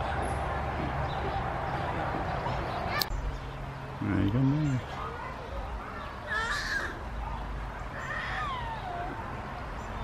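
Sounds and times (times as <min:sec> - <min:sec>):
crow cawing: 0:06.3 - 0:07.0.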